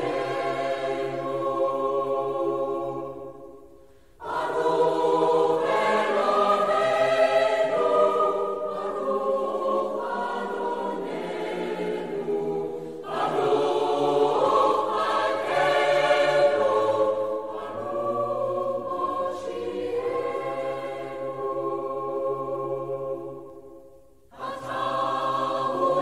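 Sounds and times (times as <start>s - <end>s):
choir singing sustained chords: 0.0s - 26.0s.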